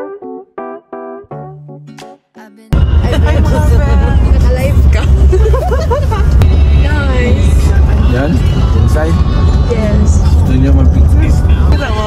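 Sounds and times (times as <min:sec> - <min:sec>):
car rumble from inside: 0:02.8 - 0:12.0.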